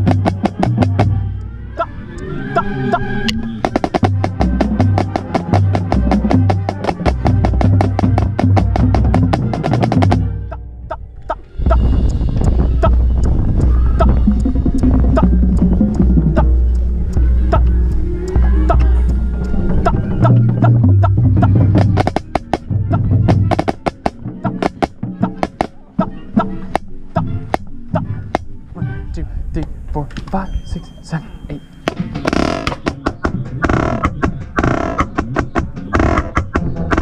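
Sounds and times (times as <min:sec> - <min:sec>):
loud low rumble: 0:10.3 - 0:23.6
sharp clicks: 0:11.2 - 0:22.7, 0:31.8 - 0:37.0
snare drum strokes: 0:21.8 - 0:22.7, 0:23.3 - 0:25.7.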